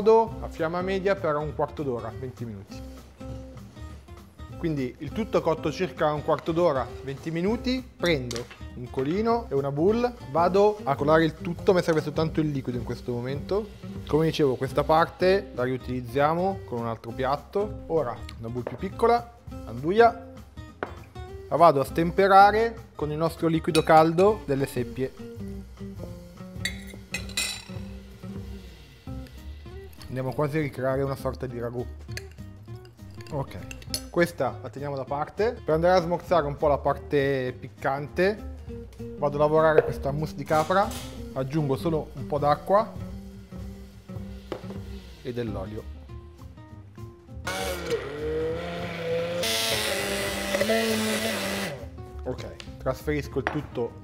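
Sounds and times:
soft background music: 0:00.0 - 0:54.0
spoon clinking against glass bowl: 0:23.7 - 0:24.3, 0:26.6 - 0:27.8
immersion blender running: 0:47.4 - 0:51.8.

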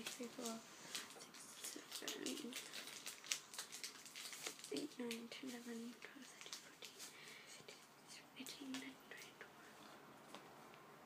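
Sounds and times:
girl whispering: 0:00.0 - 0:02.8, 0:04.7 - 0:09.8.

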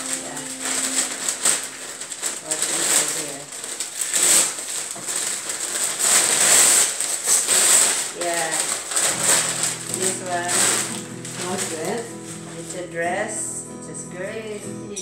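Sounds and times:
paper gift bag rustling: 0:00.0 - 0:13.4.

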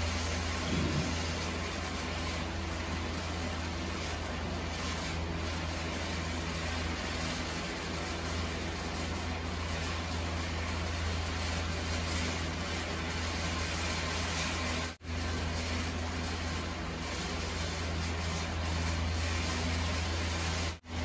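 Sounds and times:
stir-fry hiss in pan: 0:00.0 - 0:21.0.

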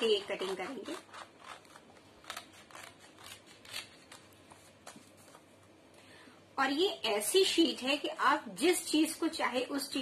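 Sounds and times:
scissors snipping paper: 0:00.0 - 0:05.5.

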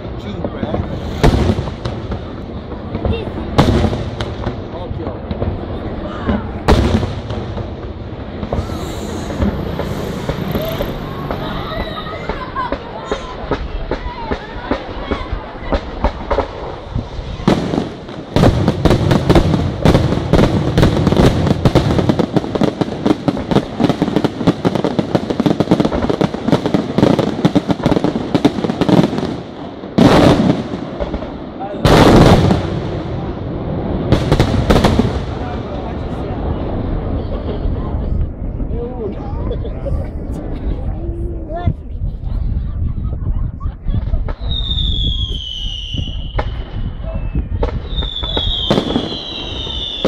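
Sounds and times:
fireworks crackling: 0:00.0 - 0:38.7, 0:43.8 - 0:50.0
low rumble: 0:07.7 - 0:12.3
firework shell bursts: 0:08.4 - 0:13.7.

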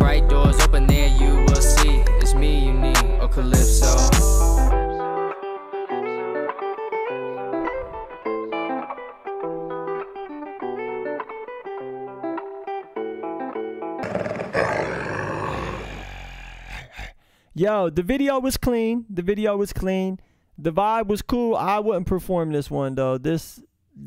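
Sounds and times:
plucked guitar melody: 0:04.3 - 0:14.0.

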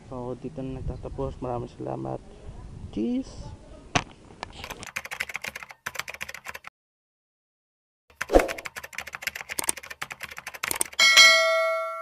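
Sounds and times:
typewriter key clicks: 0:08.4 - 0:11.0
typewriter bell ding: 0:10.7 - 0:12.0.

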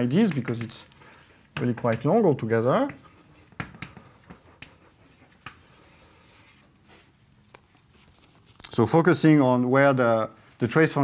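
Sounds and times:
chalk tapping on blackboard: 0:00.1 - 0:06.6
chalk stroke on blackboard: 0:00.1 - 0:07.2.

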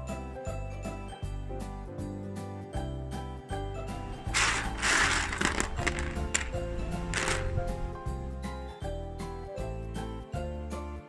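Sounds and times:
background music: 0:00.0 - 0:11.0
dried pasta rattling on plate: 0:04.2 - 0:07.6.

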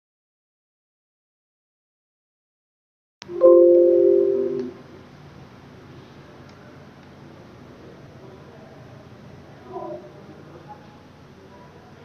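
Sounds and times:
electronic chime chord: 0:03.3 - 0:04.8.

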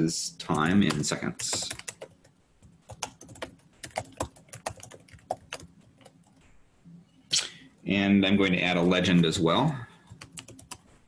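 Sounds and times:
computer keyboard typing: 0:00.5 - 0:06.4, 0:10.0 - 0:10.9.

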